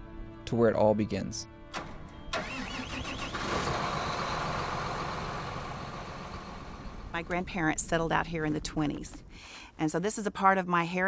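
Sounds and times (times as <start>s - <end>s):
tractor diesel engine starting: 1.7s - 7.6s.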